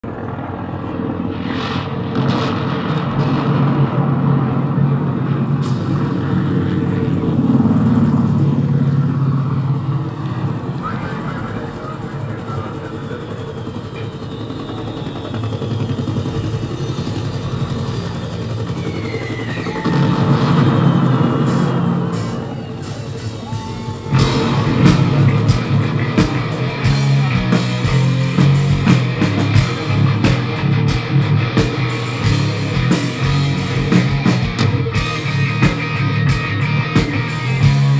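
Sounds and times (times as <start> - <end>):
steady low rumble: 0.0 - 13.4, 19.4 - 37.9
falling whistle: 9.0 - 25.2
short high whistles: 18.8 - 19.9.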